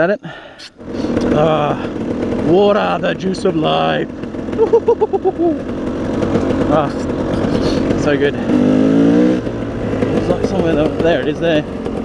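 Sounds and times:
dirt bike engine running: 0:00.3 - 0:12.0
man laughing: 0:04.5 - 0:05.6, 0:07.4 - 0:07.9.

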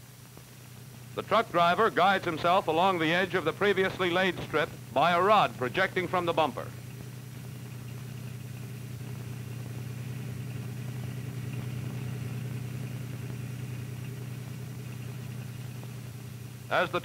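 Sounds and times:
truck engine running: 0:00.0 - 0:17.0.

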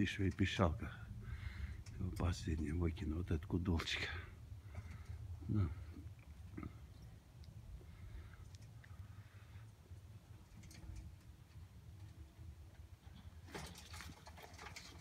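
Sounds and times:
low rumble: 0:00.0 - 0:13.1
crackling rustling clicks: 0:06.1 - 0:15.0.

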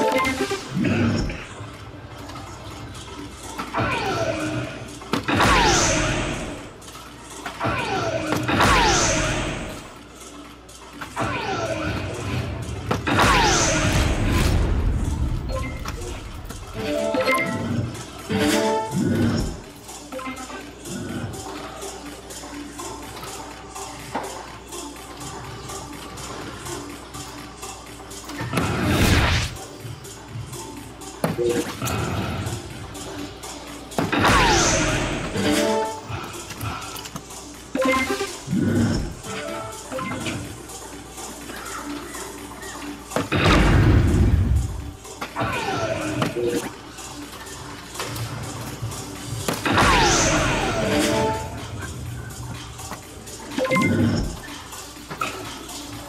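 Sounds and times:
background music: 0:00.0 - 0:56.0.

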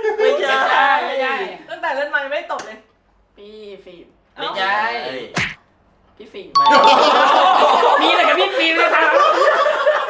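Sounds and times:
ding-dong chime: 0:06.6 - 0:08.0
people talking: 0:06.6 - 0:09.3
group of people laughing: 0:06.6 - 0:10.0.

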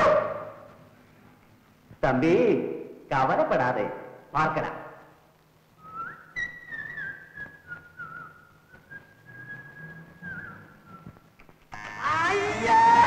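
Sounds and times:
person whistling a slow tune: 0:05.8 - 0:11.2.

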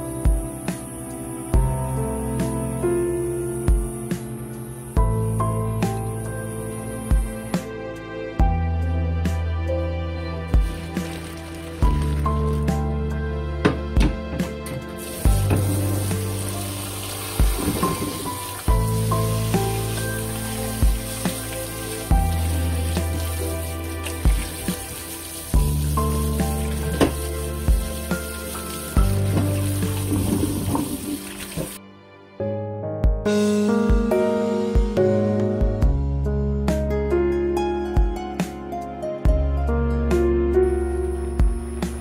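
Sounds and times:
instrumental background music: 0:00.0 - 0:42.0
noodles being rubbed and rinsed: 0:10.6 - 0:12.7, 0:15.0 - 0:31.8
tap running water into colander: 0:10.6 - 0:12.7, 0:15.0 - 0:31.8.

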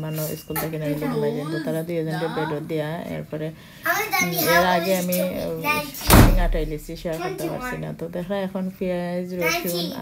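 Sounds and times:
child singing: 0:03.9 - 0:06.1.

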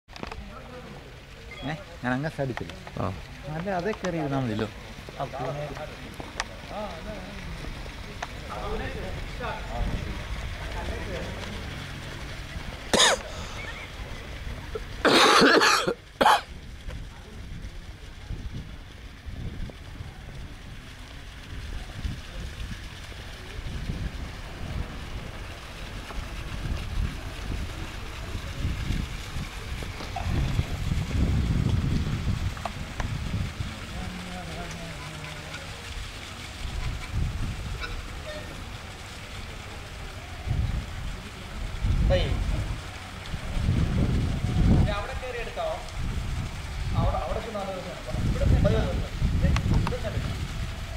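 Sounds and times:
wind buffeting microphone: 0:02.9 - 0:15.0, 0:15.8 - 0:50.9
person coughing: 0:12.9 - 0:13.3, 0:15.1 - 0:16.5.

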